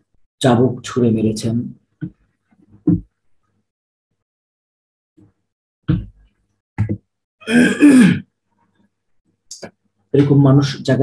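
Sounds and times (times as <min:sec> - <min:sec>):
man clearing his throat: 0:07.4 - 0:08.3.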